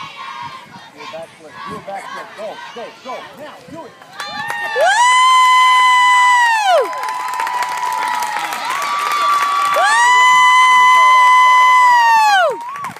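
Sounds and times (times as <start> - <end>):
crowd voices: 0.0 - 4.7.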